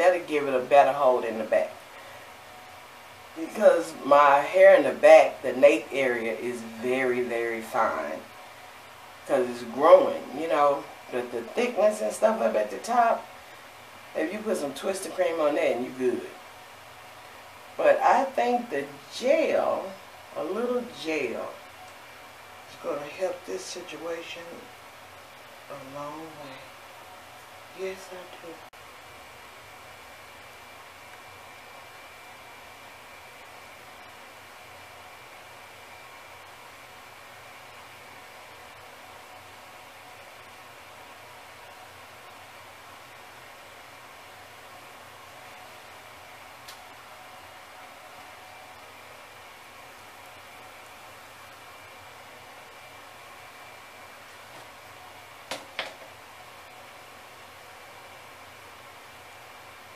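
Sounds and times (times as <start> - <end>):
faint hiss: 0.0 - 59.9
faint steady hum: 0.0 - 59.9.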